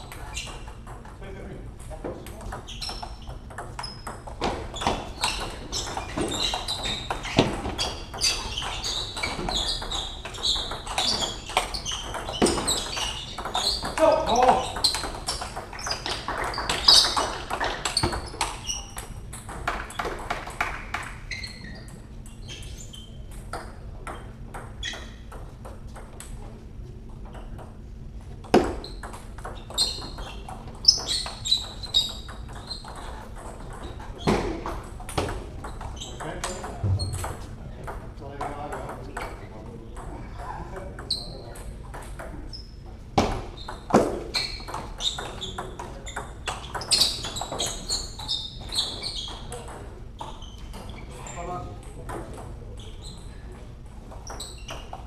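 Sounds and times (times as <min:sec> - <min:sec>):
table tennis ball hits: 0:02.1 - 0:21.2, 0:28.4 - 0:39.4
voices in a hall: 0:33.0 - 0:43.6.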